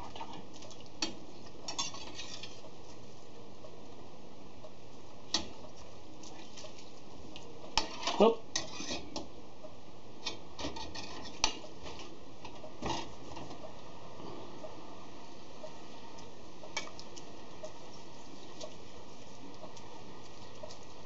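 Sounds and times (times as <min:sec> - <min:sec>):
metal utensil clinking and scraping pan: 0:01.7 - 0:02.6, 0:07.8 - 0:09.0.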